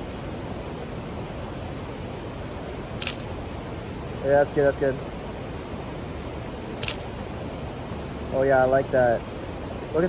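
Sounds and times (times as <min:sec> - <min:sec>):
outdoor background noise: 0:00.0 - 0:10.0
camera shutter click: 0:03.0 - 0:03.3, 0:06.8 - 0:07.1.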